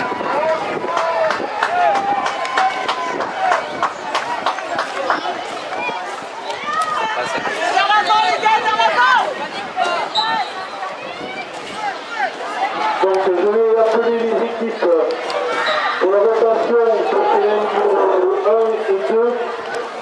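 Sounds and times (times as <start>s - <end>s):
children shouting: 0.0s - 13.1s, 15.2s - 16.1s.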